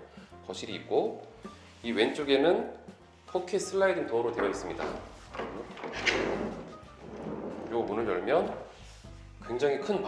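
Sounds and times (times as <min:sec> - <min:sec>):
sliding door rolling on track: 0:04.6 - 0:08.6.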